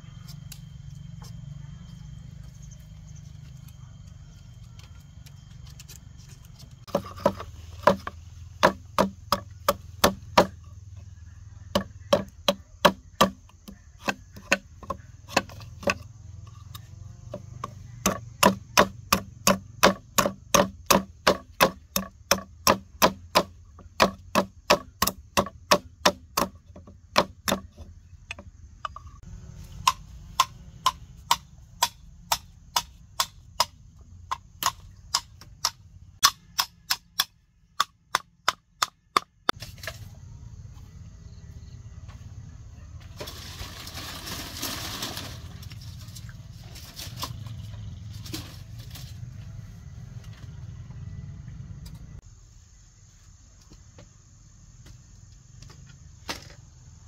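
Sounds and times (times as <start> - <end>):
high insect tone: 0.0 - 38.6, 39.5 - 42.4
knife chopping bamboo: 6.9 - 10.6, 11.7 - 16.1, 17.3 - 29.0, 29.6 - 40.0.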